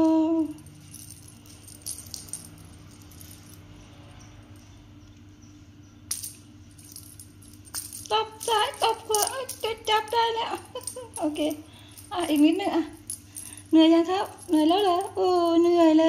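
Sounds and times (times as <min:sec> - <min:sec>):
small bell jingling: 0:00.0 - 0:04.8, 0:06.1 - 0:16.0.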